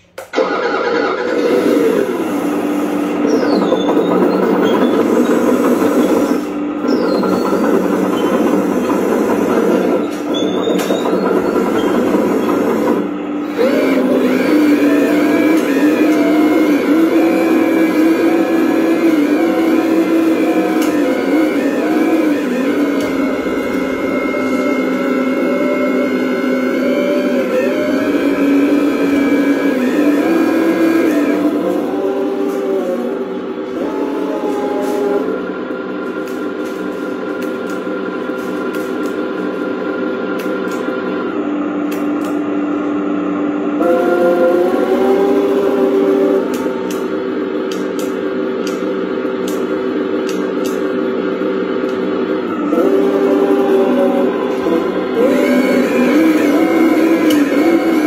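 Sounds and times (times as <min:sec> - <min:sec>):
model excavator mechanical whine: 0:00.0 - 0:58.0.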